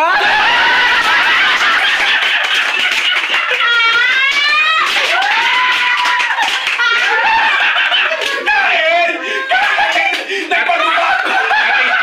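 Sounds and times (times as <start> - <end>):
people shrieking with laughter: 0.0 - 12.0.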